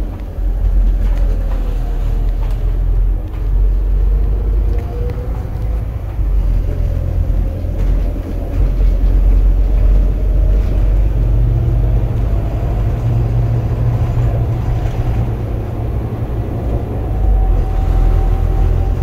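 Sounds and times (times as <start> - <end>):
diesel bus engine: 0.0 - 19.0
road rumble: 0.0 - 19.0.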